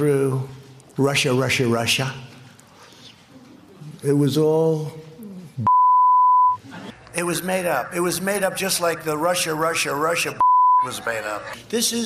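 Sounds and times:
censor bleep tone: 0:05.6 - 0:06.6, 0:10.4 - 0:10.9
man speaking: 0:07.1 - 0:12.0.

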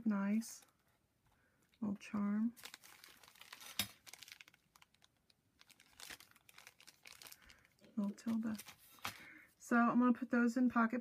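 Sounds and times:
plastic bag crinkling: 0:00.4 - 0:09.3.

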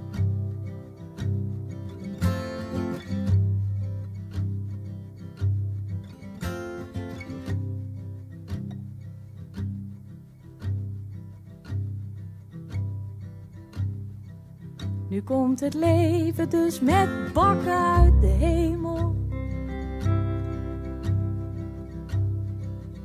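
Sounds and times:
strummed acoustic guitar: 0:00.0 - 0:23.0
double bass notes: 0:15.3 - 0:23.0.

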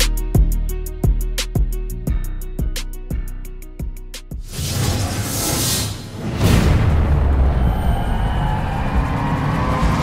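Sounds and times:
deep loud rumble: 0:06.2 - 0:10.0
rising tone: 0:06.5 - 0:10.0.

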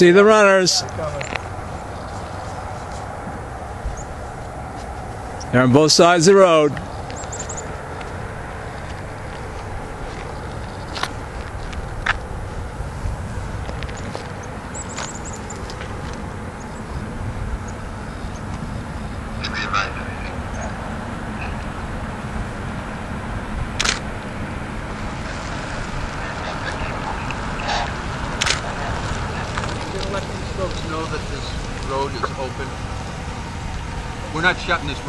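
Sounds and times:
low road rumble: 0:00.0 - 0:35.0
sharp clicks: 0:23.8 - 0:24.1, 0:28.4 - 0:28.6.

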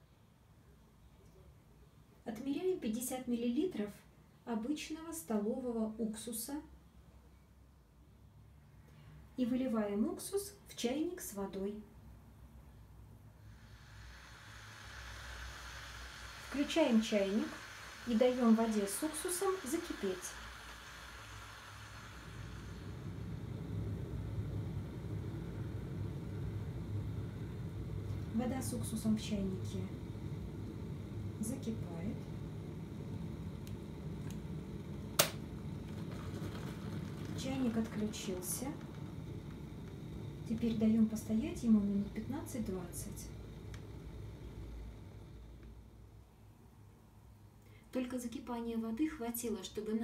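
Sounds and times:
low steady hum: 0:00.0 - 0:50.0
kettle heating hiss: 0:12.6 - 0:50.0
kettle switch clicking off: 0:35.0 - 0:35.6.

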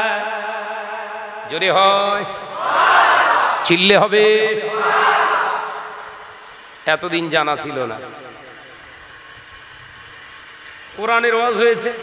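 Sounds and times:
background hiss: 0:01.0 - 0:12.0.

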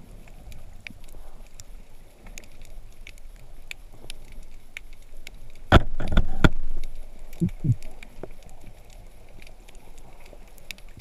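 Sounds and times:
faint underwater clicks: 0:00.0 - 0:11.0
low underwater murmur: 0:07.4 - 0:07.9.

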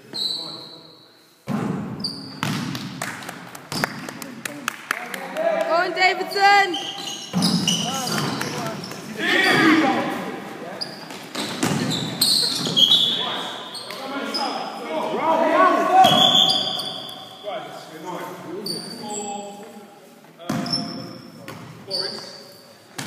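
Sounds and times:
sneakers squeaking on floor: 0:00.0 - 0:02.9, 0:06.2 - 0:14.8, 0:16.0 - 0:17.5, 0:18.2 - 0:19.8, 0:20.4 - 0:23.0
basketball bouncing on court: 0:01.5 - 0:03.0, 0:11.3 - 0:12.0
players shouting: 0:09.1 - 0:10.4, 0:14.0 - 0:16.9.

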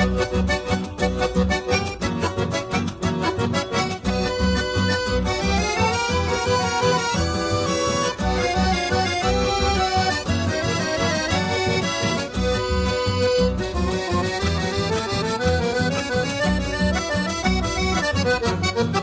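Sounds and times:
button accordion melody: 0:00.0 - 0:19.0
plucked and strummed guitars: 0:00.0 - 0:19.0
pulsing bass line: 0:00.0 - 0:19.0.

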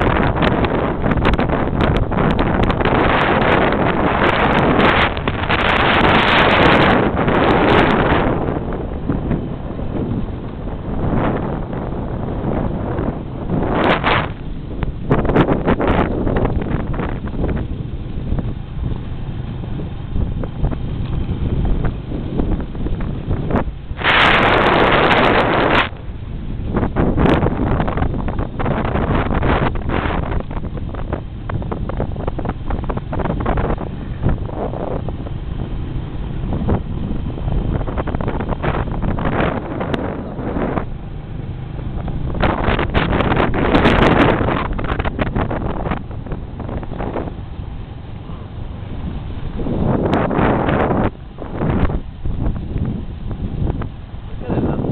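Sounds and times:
low rumble of vehicle motion: 0:00.0 - 0:54.9
motorbike engine running: 0:00.0 - 0:54.9
wind buffeting microphone: 0:00.0 - 0:54.9.

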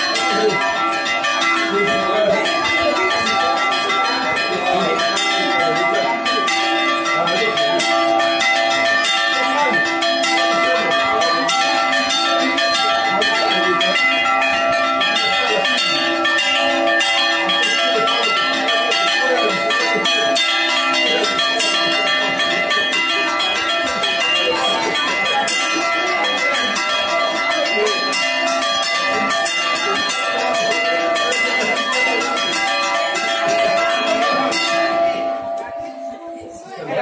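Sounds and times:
church bells pealing: 0:00.0 - 0:37.0.

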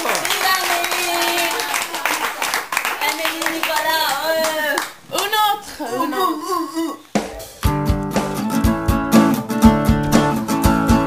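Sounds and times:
hands clapping: 0:00.0 - 0:05.4, 0:07.0 - 0:08.3.

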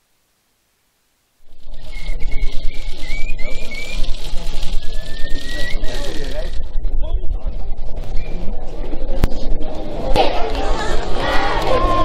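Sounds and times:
wind buffeting microphone: 0:01.5 - 0:11.2
high whistle: 0:01.6 - 0:06.7.

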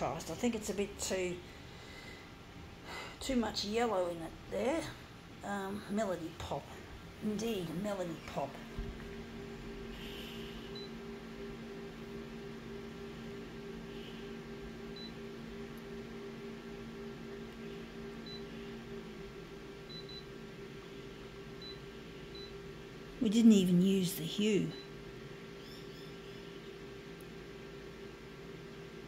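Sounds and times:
photocopier hum: 0:00.0 - 0:29.0.

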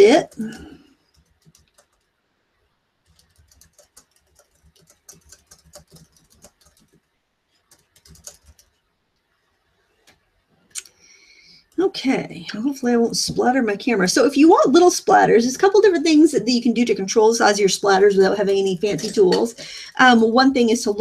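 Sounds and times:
light clicking and tapping: 0:00.3 - 0:02.1.

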